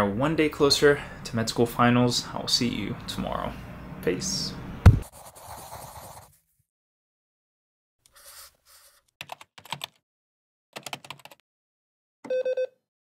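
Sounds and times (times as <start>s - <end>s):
keyboard typing: 9.2s - 10.0s, 10.8s - 11.4s.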